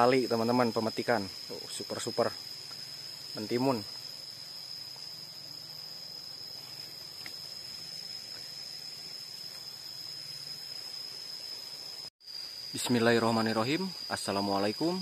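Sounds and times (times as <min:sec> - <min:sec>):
faint outdoor background noise: 0:00.0 - 0:15.0
insects droning: 0:00.0 - 0:15.0.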